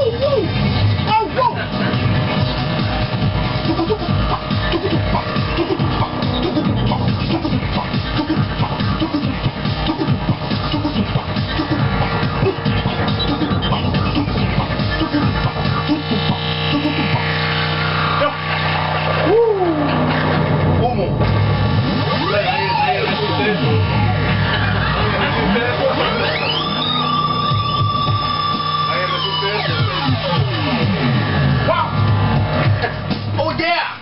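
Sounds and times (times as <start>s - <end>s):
kick-drum beat: 0.0s - 17.6s, 29.6s - 33.4s
synth lines: 0.0s - 33.8s
synth sweep: 0.0s - 33.8s.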